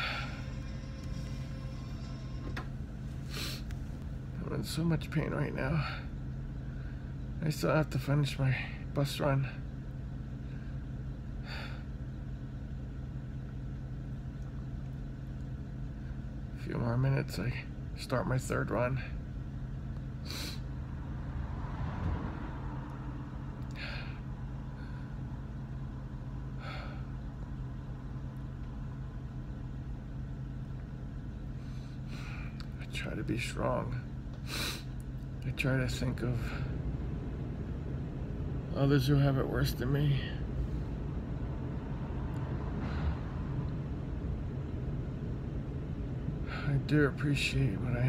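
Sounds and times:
bus engine idling: 0:00.0 - 0:21.4, 0:22.8 - 0:48.0.

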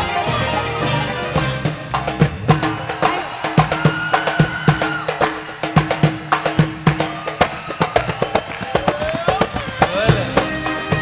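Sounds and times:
drum and percussion beat: 0:00.0 - 0:11.0
live band playing pop music: 0:00.0 - 0:11.0.

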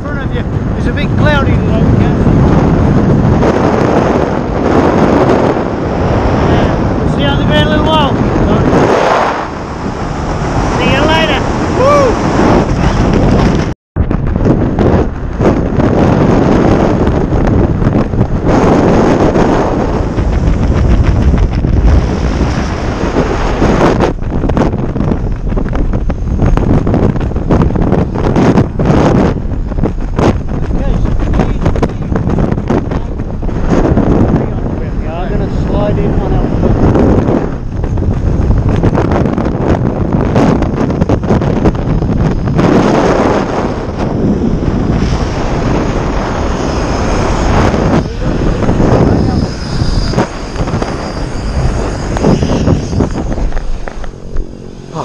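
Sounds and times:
wind buffeting microphone: 0:00.0 - 0:55.0
person calling out: 0:11.0 - 0:12.2.

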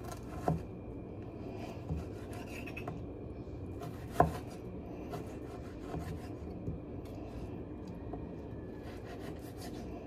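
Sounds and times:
knife scraping cutting board: 0:01.8 - 0:03.0, 0:03.8 - 0:06.4, 0:08.8 - 0:09.9.

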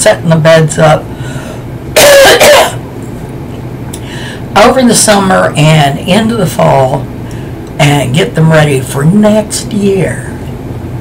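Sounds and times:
woman coughing: 0:02.0 - 0:02.8.

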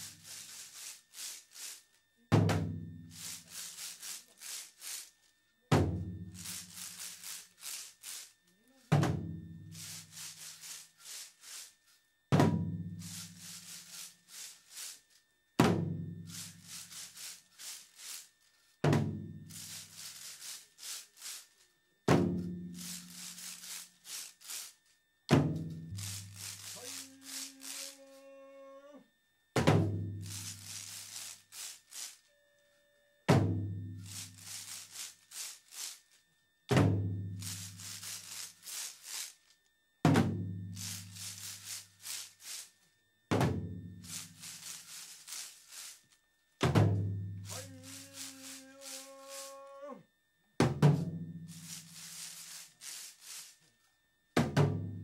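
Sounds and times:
wooden clappers clacking: 0:26.0 - 0:28.0, 0:47.5 - 0:49.6
drums struck in unison: 0:29.6 - 0:30.5
drawn-out pitched call: 0:47.5 - 0:50.0.

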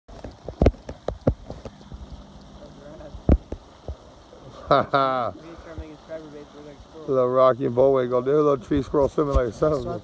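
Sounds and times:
sharp knocks and thumps: 0:00.1 - 0:02.1, 0:03.2 - 0:04.0.

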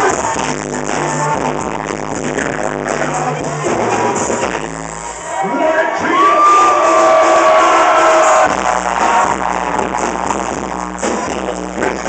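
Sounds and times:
live rap music over pa: 0:00.0 - 0:12.0.

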